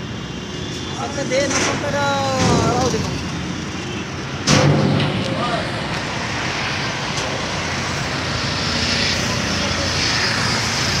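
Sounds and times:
vehicle engine and traffic: 0:00.0 - 0:11.0.

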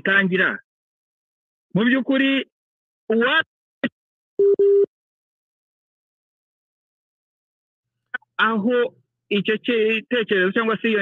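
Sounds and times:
telephone line beep: 0:04.4 - 0:04.9.

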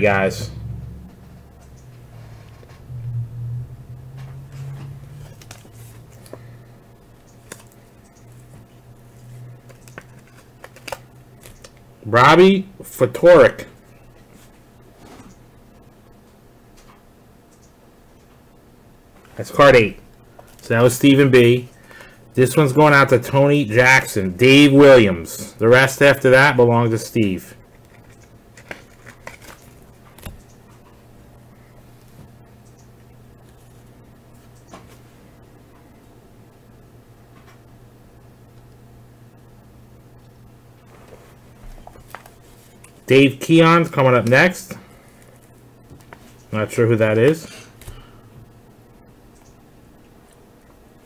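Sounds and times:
low steady hum: 0:00.0 - 0:51.0
cards being flipped: 0:05.2 - 0:06.4, 0:07.3 - 0:08.6, 0:09.2 - 0:11.8, 0:27.7 - 0:30.5
cards clicking and tapping: 0:09.6 - 0:11.8.

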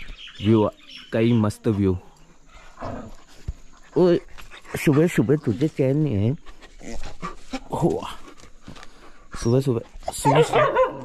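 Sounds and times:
dog panting and snuffling: 0:02.5 - 0:10.2.

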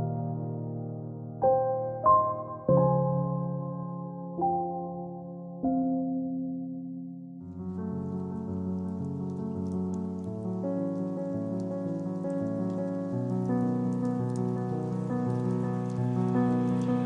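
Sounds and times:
faint crackling patter: 0:07.4 - 0:17.0.

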